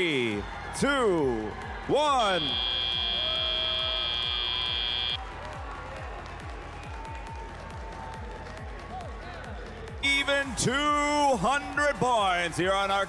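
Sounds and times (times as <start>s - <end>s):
high buzzer tone: 2.2s - 5.2s.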